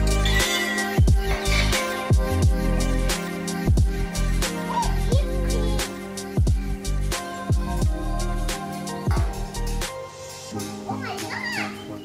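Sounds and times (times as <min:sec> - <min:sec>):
background music: 0:00.0 - 0:12.0
child calling out: 0:04.6 - 0:05.9, 0:10.9 - 0:11.9.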